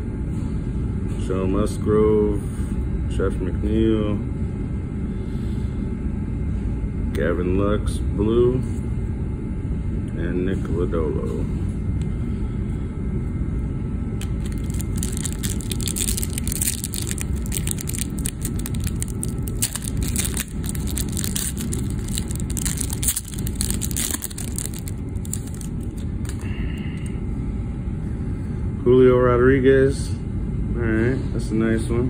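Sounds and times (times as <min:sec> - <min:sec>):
steady low rumble: 0:08.0 - 0:30.8
cards being handled: 0:14.2 - 0:26.4
plastic wrapper crinkling and tearing: 0:14.2 - 0:26.4.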